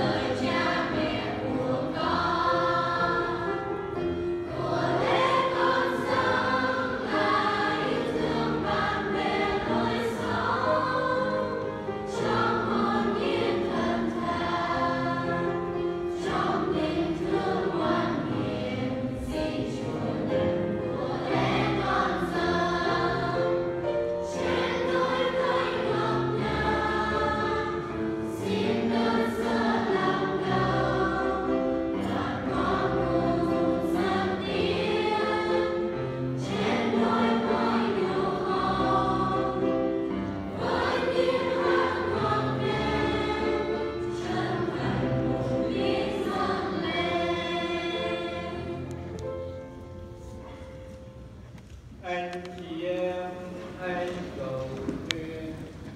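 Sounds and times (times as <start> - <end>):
choir singing a hymn: 0.0 - 51.4
piano accompaniment: 0.0 - 52.1.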